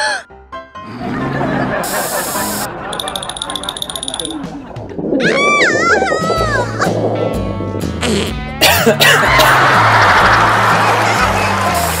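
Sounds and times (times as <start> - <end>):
music with bass line: 5.6 - 12.0.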